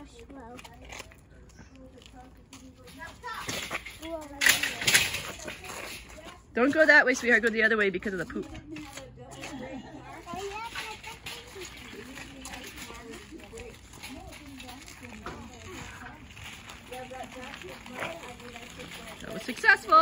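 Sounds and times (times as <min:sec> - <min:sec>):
faint voices talking: 0:00.0 - 0:20.0
metal wagon wheels on paving: 0:00.0 - 0:20.0.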